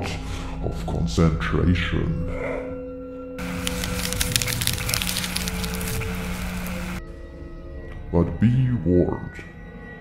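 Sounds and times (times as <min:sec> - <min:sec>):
low music drone: 0:02.1 - 0:08.0
electric crackling: 0:03.4 - 0:07.0.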